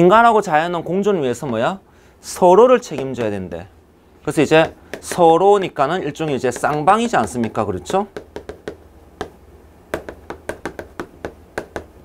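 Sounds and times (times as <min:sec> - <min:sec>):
chalk tapping on chalkboard: 0:02.9 - 0:03.4, 0:04.6 - 0:12.0.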